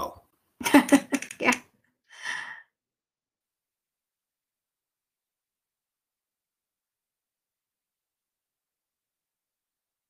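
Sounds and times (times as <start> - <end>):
person exhaling breathily: 2.1 - 2.7.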